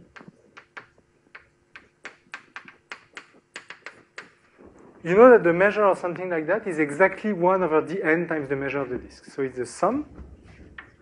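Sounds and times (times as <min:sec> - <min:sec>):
chalk tapping on blackboard: 0:00.1 - 0:04.6.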